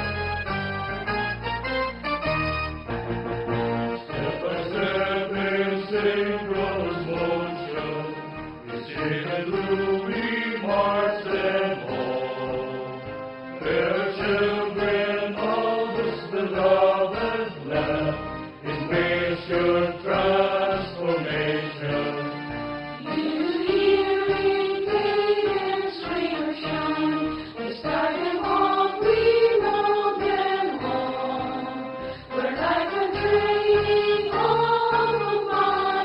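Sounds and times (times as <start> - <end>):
instrumental backing: 0.0 - 36.0
voices singing slow melody: 3.9 - 36.0.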